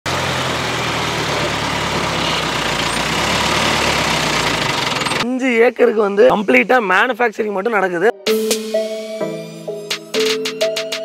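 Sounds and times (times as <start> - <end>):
crane diesel engine running: 0.1 - 5.2.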